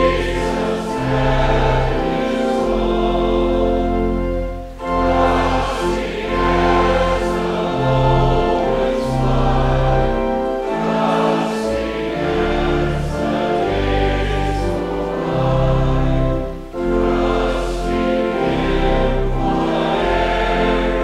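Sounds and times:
group singing a hymn: 0:00.0 - 0:21.0
instrumental accompaniment: 0:00.0 - 0:21.0.

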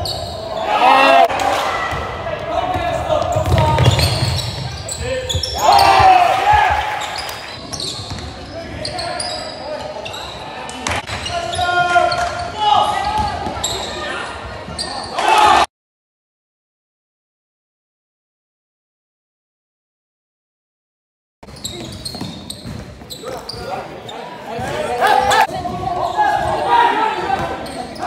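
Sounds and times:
sneaker squeaks: 0:00.0 - 0:01.2, 0:02.8 - 0:15.2, 0:21.4 - 0:28.0
people shouting: 0:00.4 - 0:02.2, 0:05.4 - 0:07.2, 0:15.1 - 0:15.7
basketball bouncing on court: 0:01.9 - 0:08.3, 0:21.4 - 0:23.6, 0:25.5 - 0:26.5.

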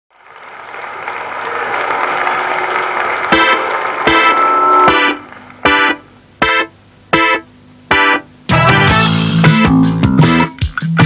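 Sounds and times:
full-band chord hit: 0:03.4 - 0:10.5.

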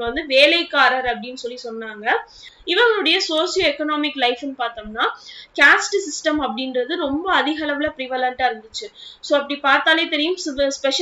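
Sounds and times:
woman lecturing: 0:00.0 - 0:11.0.

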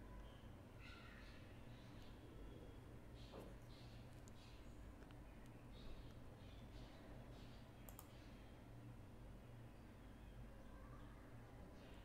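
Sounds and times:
faint low hum: 0:00.0 - 0:12.0
computer mouse clicks: 0:07.8 - 0:08.2.

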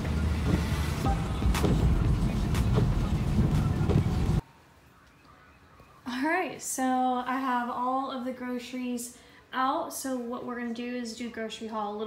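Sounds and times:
car interior rumble: 0:00.0 - 0:04.4
light rain taps: 0:00.4 - 0:04.4.

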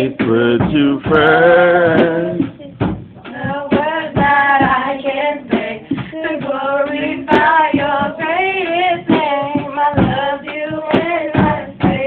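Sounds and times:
girls singing gospel song: 0:00.0 - 0:12.0
steady beat: 0:00.0 - 0:12.0.

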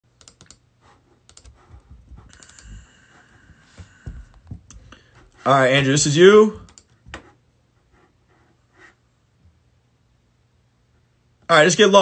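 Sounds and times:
computer keyboard typing: 0:00.2 - 0:00.6, 0:01.2 - 0:02.8, 0:06.6 - 0:07.0.

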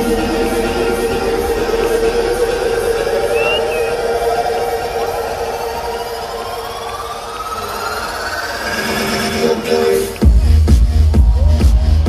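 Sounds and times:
electronic dance music build-up: 0:00.0 - 0:12.0.

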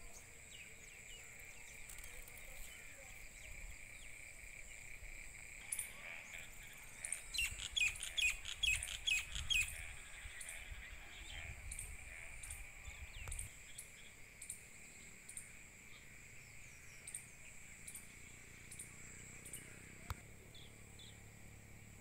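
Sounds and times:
bird chirping: 0:00.0 - 0:22.0
crickets droning: 0:00.0 - 0:22.0.

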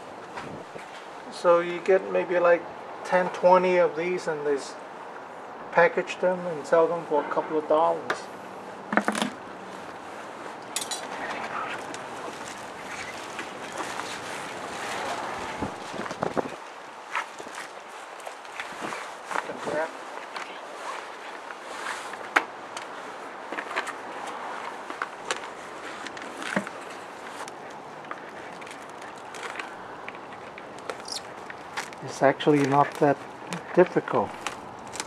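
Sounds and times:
outdoor background noise: 0:00.0 - 0:35.0.

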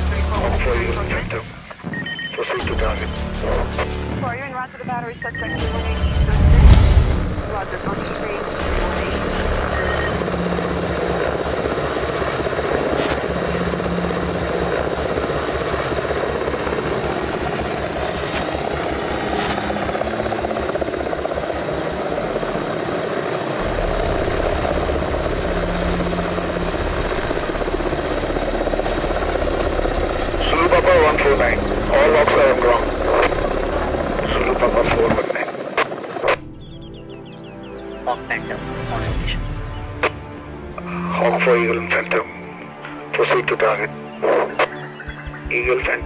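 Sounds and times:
helicopter rotor beat and engine: 0:00.0 - 0:46.0.

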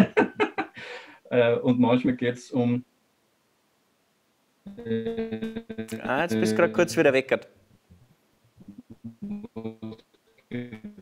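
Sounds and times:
voice breaking up on video call: 0:05.9 - 0:07.2.

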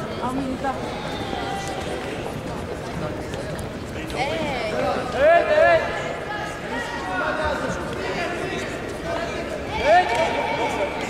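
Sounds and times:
voices talking in echoing hall: 0:00.0 - 0:11.0.

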